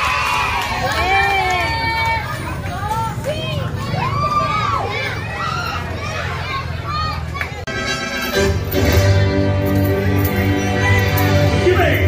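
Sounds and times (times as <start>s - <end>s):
crowd hubbub: 0.0s - 12.0s
children chattering and calling out: 1.1s - 8.3s.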